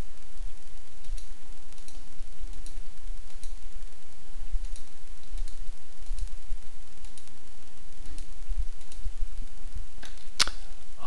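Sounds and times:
steady low hum: 0.0 - 11.0
computer mouse click: 1.0 - 3.6, 4.6 - 6.3, 7.0 - 7.4, 8.0 - 9.0.

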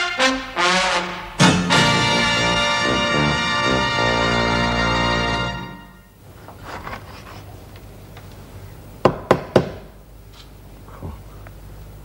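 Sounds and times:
hammer knocking on wall: 9.1 - 9.8.

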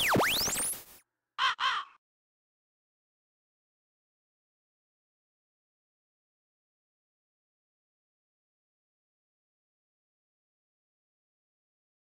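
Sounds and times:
crow cawing: 1.4 - 2.0.

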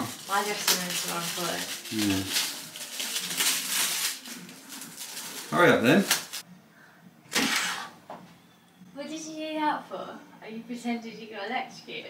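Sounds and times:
objects rustling and clattering: 0.0 - 6.4.

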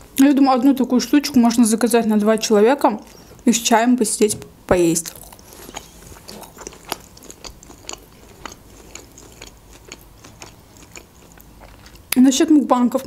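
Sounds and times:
wet chewing mouth clicks: 5.0 - 12.2.

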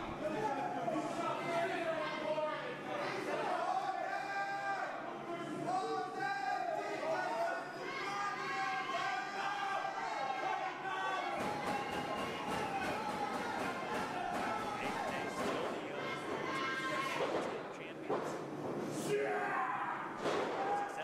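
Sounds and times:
crowd shouting and chattering: 0.0 - 21.0.

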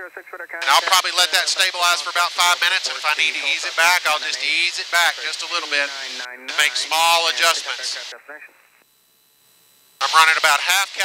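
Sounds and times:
muffled voice: 0.0 - 8.6, 10.0 - 11.0
man speaking: 0.6 - 8.2, 10.0 - 11.0.

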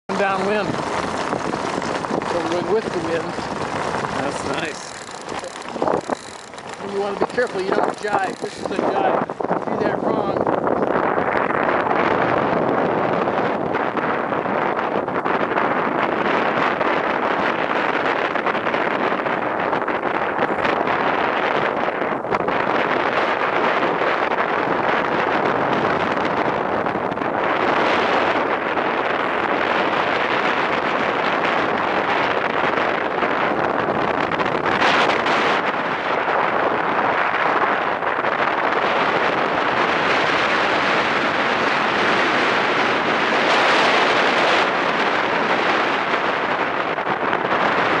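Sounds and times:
wind buffeting microphone: 0.0 - 48.0
wheels rumbling over clay: 0.1 - 48.0.

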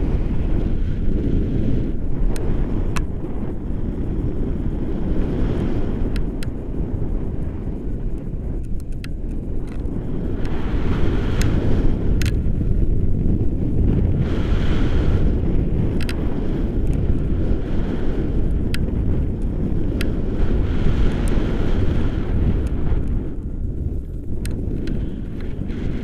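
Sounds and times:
wind buffeting microphone: 0.0 - 26.0
sharp ticks: 2.1 - 4.5, 5.9 - 13.7, 15.6 - 17.4, 18.2 - 26.0.

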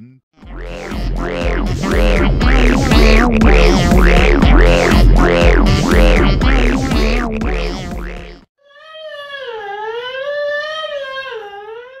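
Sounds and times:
electronic music: 0.4 - 8.5.

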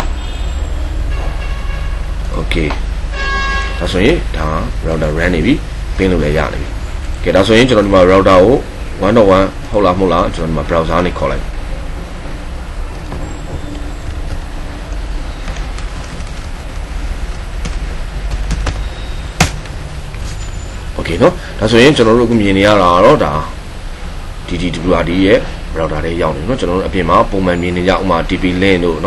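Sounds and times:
low rumbling hum: 0.0 - 24.8.

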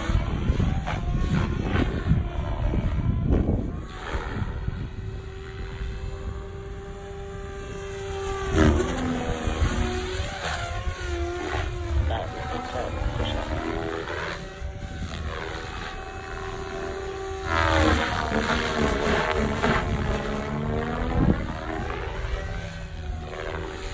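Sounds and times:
rc helicopter rotor and motor whine: 0.0 - 23.9.

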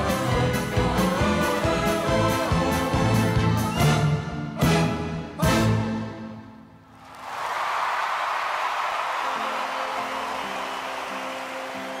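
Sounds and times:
audience applauding: 7.0 - 12.0.

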